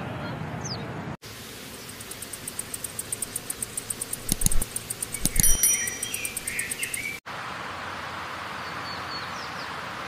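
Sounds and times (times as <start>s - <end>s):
insect chirping: 1.4s - 7.2s
bird twittering: 1.9s - 7.2s.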